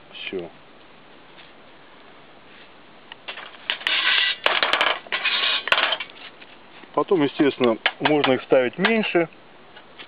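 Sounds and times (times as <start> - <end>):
metal scraping on metal: 3.3 - 6.2.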